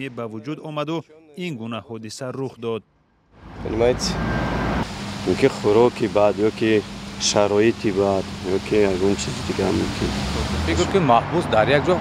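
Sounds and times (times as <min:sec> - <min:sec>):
man's voice: 0:00.0 - 0:02.8
street background noise: 0:03.3 - 0:12.0.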